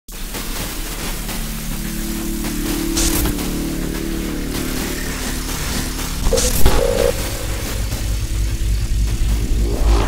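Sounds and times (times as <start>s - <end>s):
low synth tones: 0.1s - 10.0s
noisy electronic music: 0.1s - 10.0s
static-like hiss: 0.1s - 10.0s.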